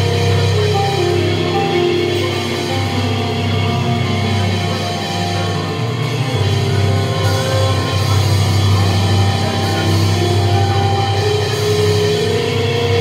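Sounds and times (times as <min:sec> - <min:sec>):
electric keyboard chords: 0:00.0 - 0:13.0
heavy bass: 0:00.0 - 0:13.0.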